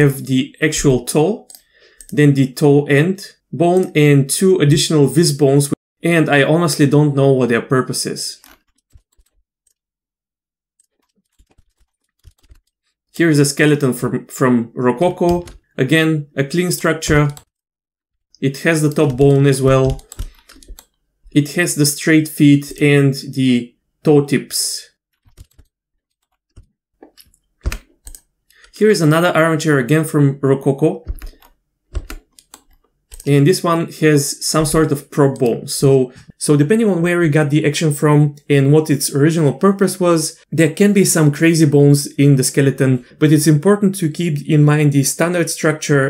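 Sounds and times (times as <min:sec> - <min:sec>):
computer mouse and keyboard clicks: 0:08.4 - 0:09.8, 0:10.8 - 0:12.7, 0:18.9 - 0:21.0, 0:25.2 - 0:28.8, 0:31.0 - 0:33.3.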